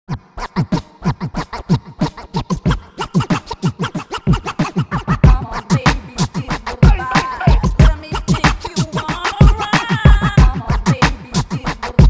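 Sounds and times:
music track: 0.1 - 12.0
turntable scratching: 0.1 - 12.0.

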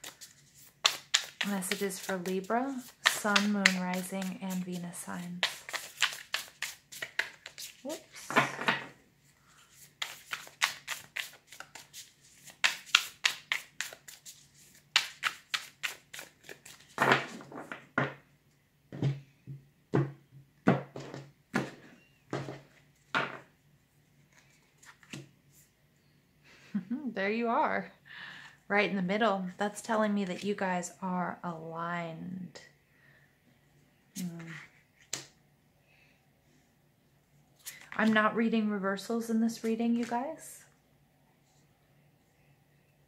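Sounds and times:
cards being shuffled: 0.0 - 8.6, 9.6 - 17.6, 24.3 - 25.3, 37.6 - 38.2.

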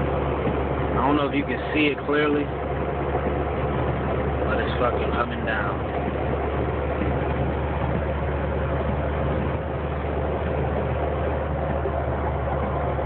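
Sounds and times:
vehicle engine and road noise: 0.0 - 13.0.

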